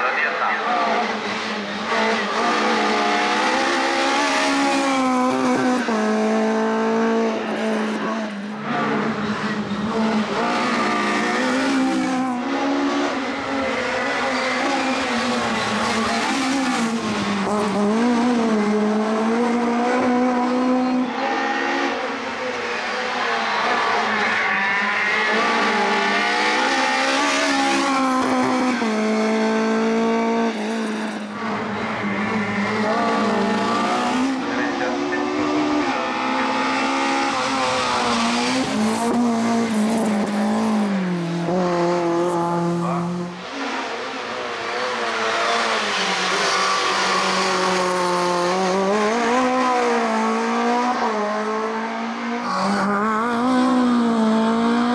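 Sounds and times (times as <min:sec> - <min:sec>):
race car engine revving: 0:00.1 - 0:54.9.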